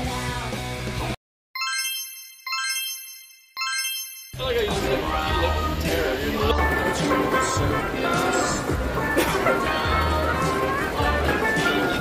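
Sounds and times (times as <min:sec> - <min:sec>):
music: 0:00.0 - 0:01.2, 0:04.4 - 0:12.0.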